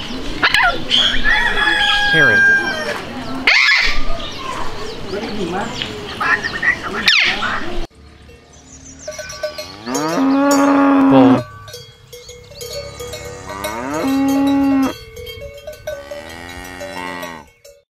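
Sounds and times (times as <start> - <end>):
cowbells clanking: 8.2 - 17.9
bull mooing: 9.6 - 11.6, 12.9 - 15.0, 15.9 - 17.5.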